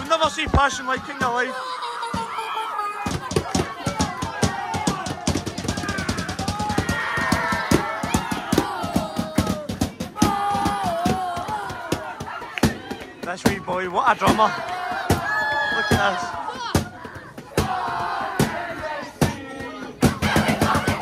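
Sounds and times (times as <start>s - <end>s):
crowd chanting and shouting: 0.0s - 21.0s
marching drums beaten fast: 3.1s - 21.0s.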